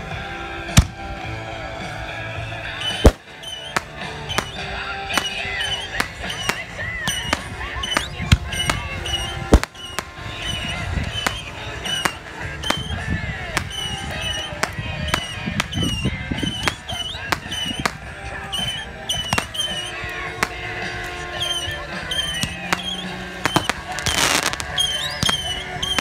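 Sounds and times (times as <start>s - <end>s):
high chirping tones: 2.6s - 26.0s
fireworks popping and banging: 2.7s - 26.0s.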